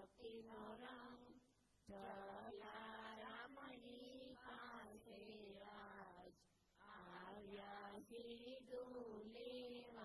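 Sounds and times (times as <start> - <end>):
faint devotional chanting: 0.0 - 10.0.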